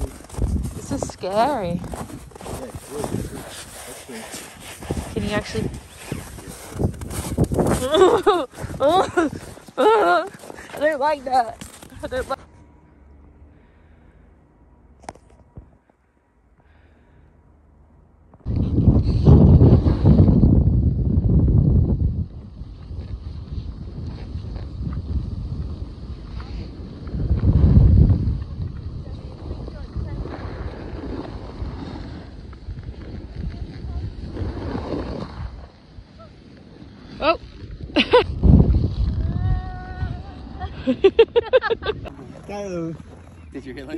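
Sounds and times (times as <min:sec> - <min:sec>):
snowboard sliding over snow: 0:00.0 - 0:12.4, 0:18.5 - 0:43.9
wind rushing over microphone: 0:00.0 - 0:12.4, 0:18.4 - 0:43.5.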